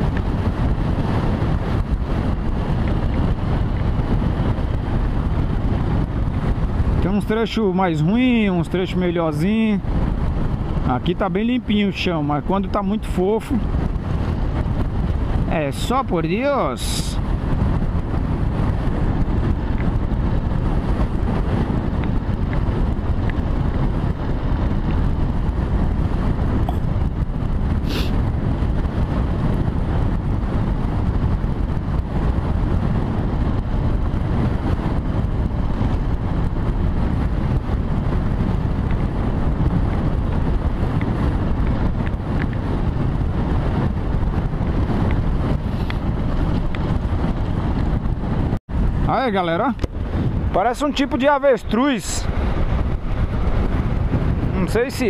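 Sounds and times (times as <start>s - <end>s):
wind on microphone: 0.0s - 55.0s.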